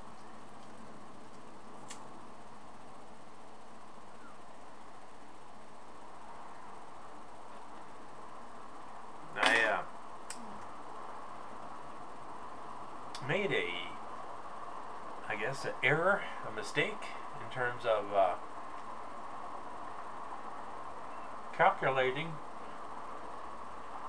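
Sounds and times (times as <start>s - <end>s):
steady background hiss: 0.0s - 24.0s
faint clicks: 0.1s - 2.1s, 10.2s - 10.7s, 13.1s - 13.3s.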